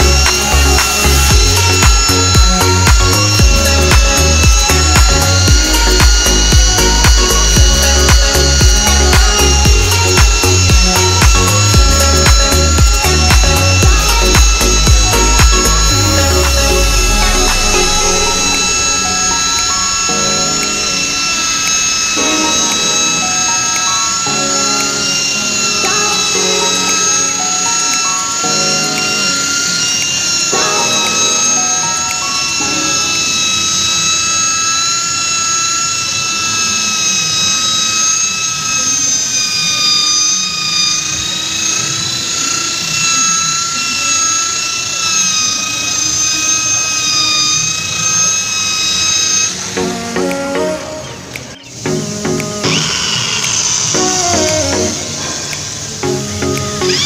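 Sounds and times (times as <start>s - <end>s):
background music: 0.0s - 34.9s, 47.6s - 57.0s
glass polisher motor whine: 0.0s - 57.0s.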